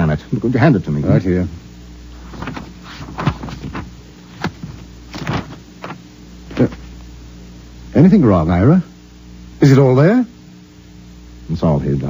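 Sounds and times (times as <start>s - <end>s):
steady low hum: 0.0s - 12.0s
paper pages rustling: 2.1s - 7.1s.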